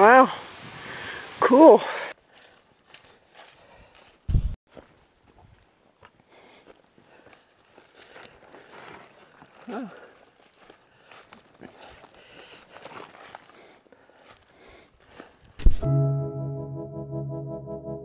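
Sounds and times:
footsteps through dry leaves: 2.2s - 5.4s, 7.4s - 15.6s.

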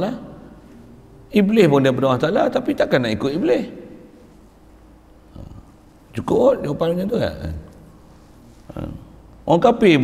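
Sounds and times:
low microphone hum: 0.0s - 10.0s.

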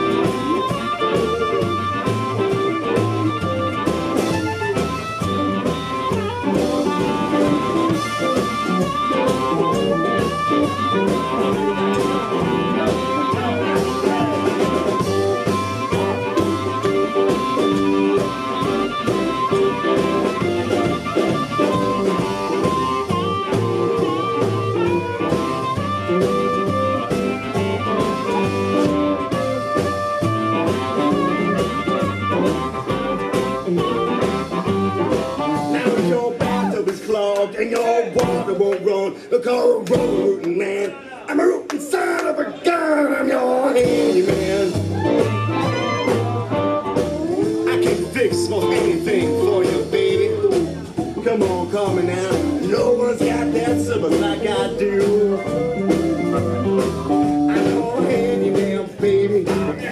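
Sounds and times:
upright double bass: 0.0s - 37.3s, 43.8s - 59.9s
drum kit: 0.0s - 38.9s, 39.5s - 40.6s, 43.6s - 59.9s
electric guitar: 0.0s - 41.3s, 43.6s - 59.9s.

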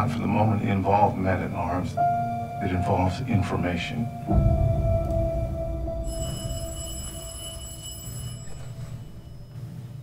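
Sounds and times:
low sustained drone: 1.9s - 9.6s
thin high ringing tone: 5.7s - 10.0s.

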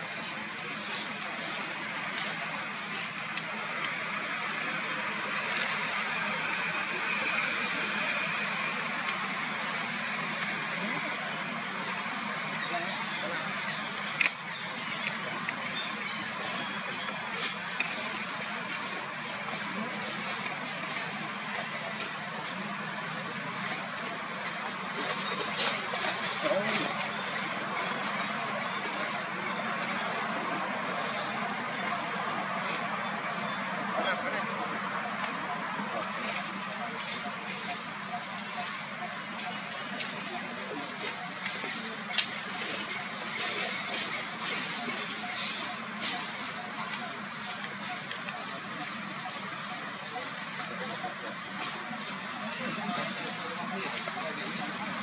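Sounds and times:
indistinct voices: 0.0s - 55.0s
outdoor background noise: 0.0s - 55.0s.

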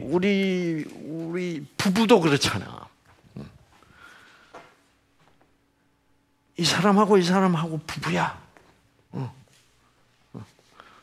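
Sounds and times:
man breathing: 3.7s - 4.8s, 10.5s - 11.0s.

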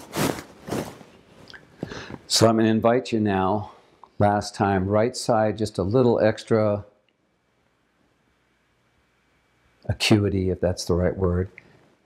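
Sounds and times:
man breathing into microphone: 1.8s - 2.3s.

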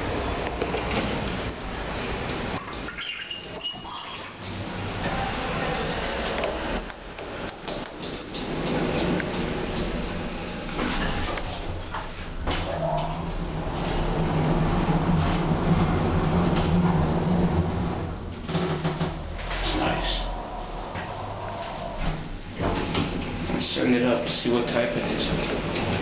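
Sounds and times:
hydraulic elevator hum: 0.8s - 26.0s
elevator door clunks and clicks: 6.1s - 20.0s, 20.9s - 23.9s, 24.5s - 26.0s.

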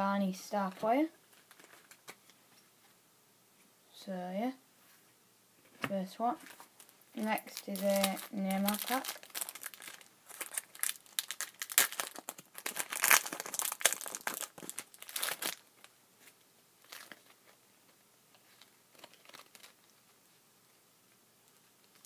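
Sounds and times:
wrapper tearing and crinkling: 6.4s - 15.9s, 16.8s - 17.4s, 18.5s - 19.9s.

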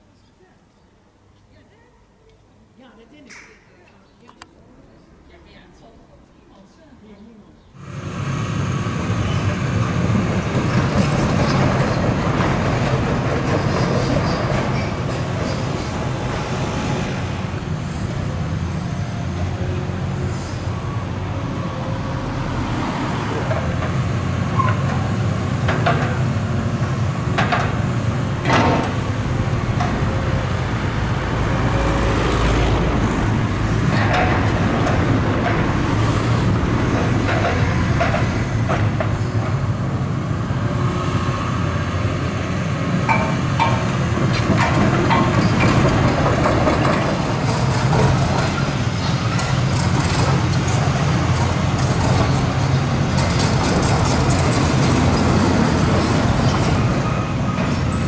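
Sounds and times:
diesel engine droning: 7.8s - 13.6s.

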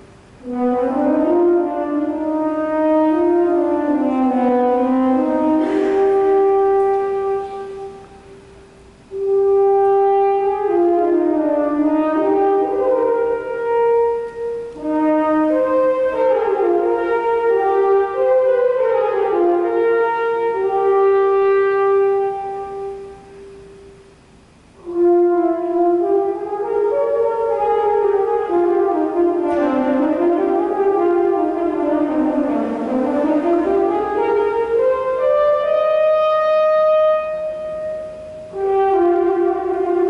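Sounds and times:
french horn melody: 0.0s - 40.0s.

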